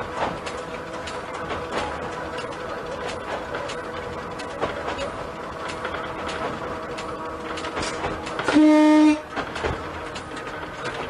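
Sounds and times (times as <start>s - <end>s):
train wheels clattering on track: 0.0s - 11.0s
train horn blast: 8.4s - 9.4s.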